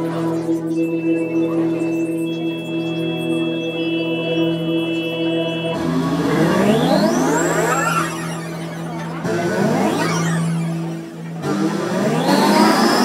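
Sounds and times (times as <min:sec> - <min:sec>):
held synthesizer chord: 0:00.0 - 0:13.0
rising synth tone sweep: 0:00.0 - 0:13.0.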